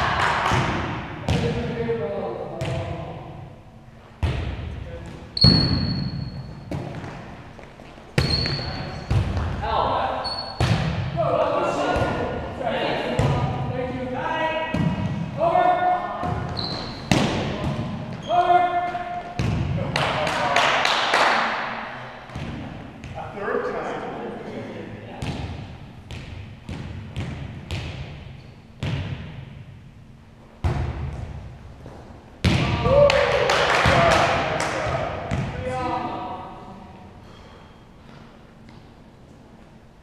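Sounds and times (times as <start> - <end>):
shoe squeaks: 5.4 - 6.7, 8.2 - 9.1, 10.2 - 10.6, 16.5 - 17.1.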